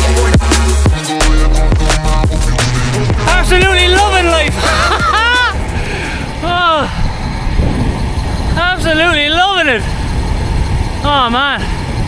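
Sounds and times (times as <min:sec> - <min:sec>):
background music: 0:00.0 - 0:06.5
wind and road noise: 0:01.5 - 0:12.0.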